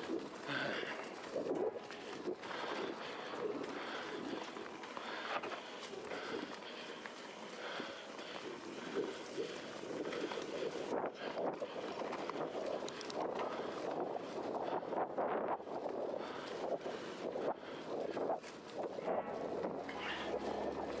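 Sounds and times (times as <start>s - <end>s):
bike clicking and rattling: 0.0s - 21.0s.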